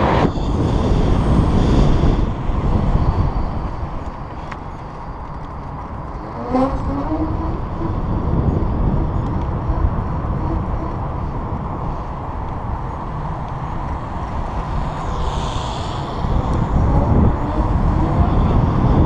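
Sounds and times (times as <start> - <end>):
road rumble: 0.0 - 19.0
wind rush: 0.0 - 19.0.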